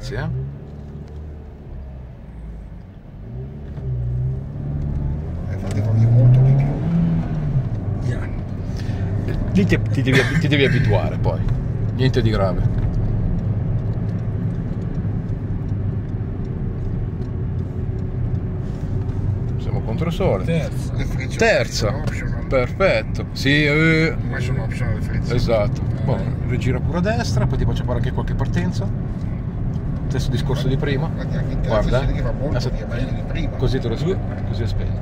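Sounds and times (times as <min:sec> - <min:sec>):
car engine accelerating: 0:00.0 - 0:35.0.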